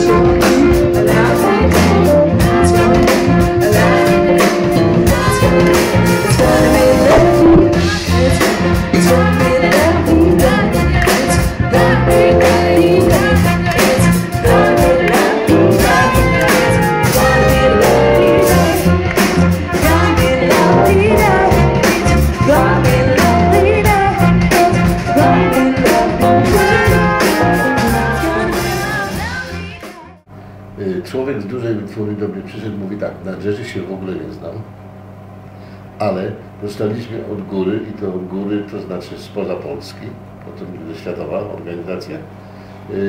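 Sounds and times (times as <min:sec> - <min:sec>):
bass line: 0:00.0 - 0:30.2
live band playing: 0:00.0 - 0:30.2
drum kit beat: 0:00.0 - 0:30.3
woman singing into a microphone: 0:05.0 - 0:16.6, 0:19.7 - 0:24.4, 0:25.2 - 0:30.2.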